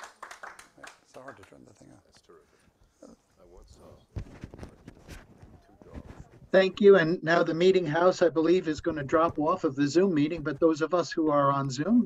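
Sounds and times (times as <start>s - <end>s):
microphone handling knocks and rubs: 4.1s - 6.5s, 8.8s - 9.6s.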